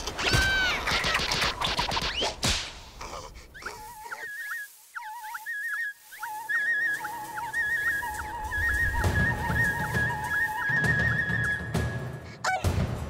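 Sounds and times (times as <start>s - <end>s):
whimsical trilling music: 3.6s - 13.0s.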